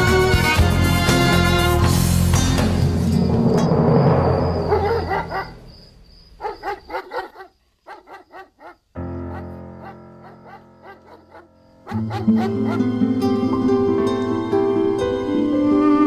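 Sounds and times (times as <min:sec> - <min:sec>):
drama score music: 0:00.0 - 0:06.0.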